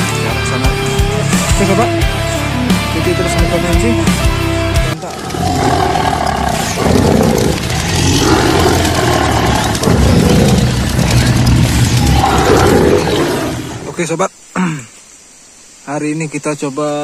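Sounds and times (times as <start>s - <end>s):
tiger roaring: 5.0s - 14.0s.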